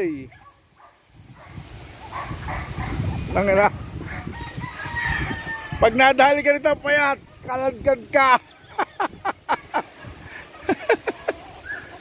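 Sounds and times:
rooster crowing: 4.1s - 6.0s.

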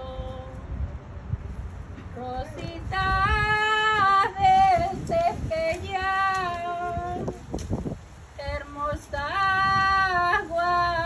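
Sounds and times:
woman singing a hymn: 0.0s - 0.6s, 2.1s - 7.4s, 8.4s - 11.0s.

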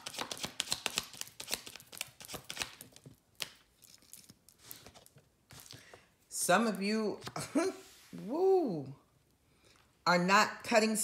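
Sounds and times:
cards being shuffled: 0.0s - 6.0s.

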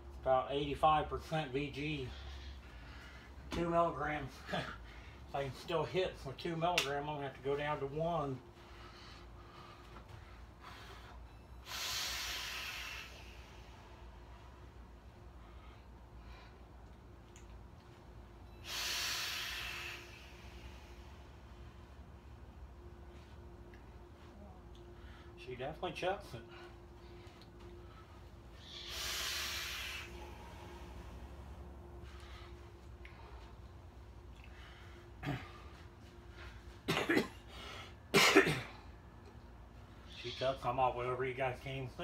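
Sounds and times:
person exhaling breathy hiss: 11.6s - 13.8s, 18.6s - 21.2s, 28.6s - 31.2s
man coughing: 35.2s - 35.7s, 36.9s - 37.5s, 38.1s - 38.8s.

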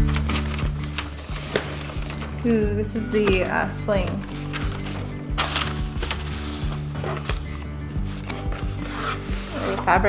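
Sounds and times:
background music: 0.0s - 10.0s
box rustling and scraping: 3.1s - 10.0s.

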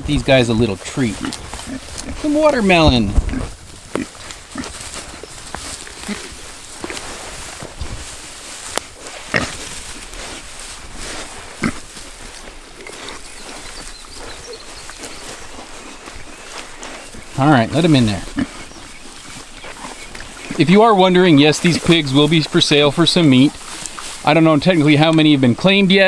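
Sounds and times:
pigs chewing and crunching: 0.0s - 26.0s
pigs snuffling: 0.0s - 26.0s.

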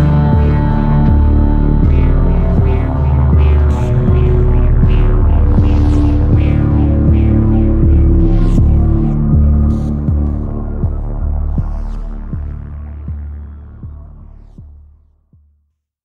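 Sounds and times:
pulsing electronic bass: 0.0s - 15.2s.

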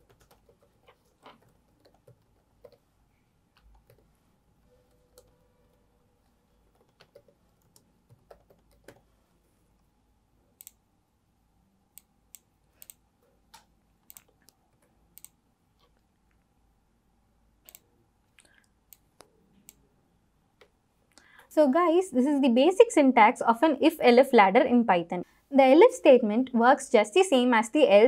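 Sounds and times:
laptop keyboard typing: 0.0s - 2.9s, 3.5s - 9.2s.

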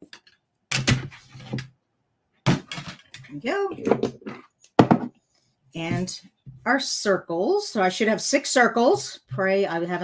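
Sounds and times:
plastic knocks and rattles: 2.4s - 5.1s.

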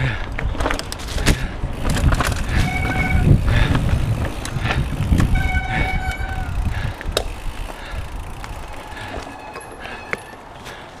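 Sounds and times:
bike tyres rumbling on dirt: 0.0s - 10.8s
wind on camera: 0.3s - 9.2s
bike knocks and rattles: 0.3s - 10.4s.

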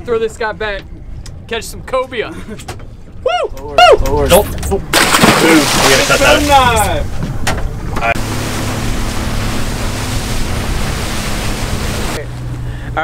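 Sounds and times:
boat engine hum: 0.0s - 13.0s
water rushing past hull: 4.9s - 7.2s, 7.8s - 12.3s.

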